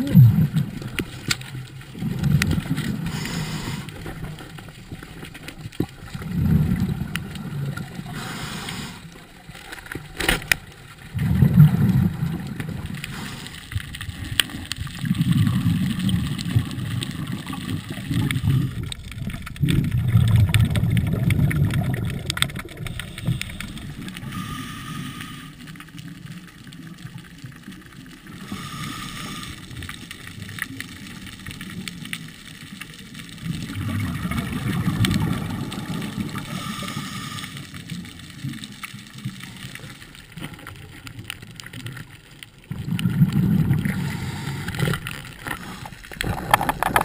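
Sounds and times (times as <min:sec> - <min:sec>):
underwater rumbling and gurgling: 0:00.0 - 0:47.0.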